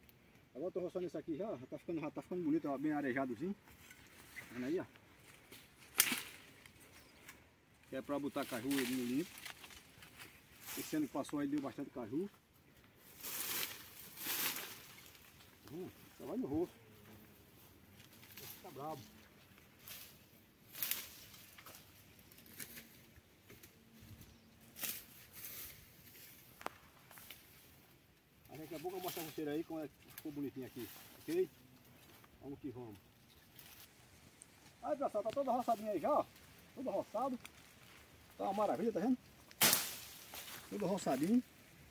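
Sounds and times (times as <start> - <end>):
blade chopping into undergrowth: 5.9 - 6.4, 39.5 - 40.5.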